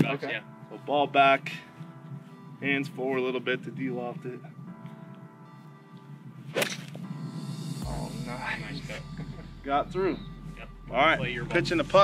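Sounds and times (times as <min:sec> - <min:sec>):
golf club swish: 0:06.4 - 0:07.2
golf ball strike: 0:06.5 - 0:07.1.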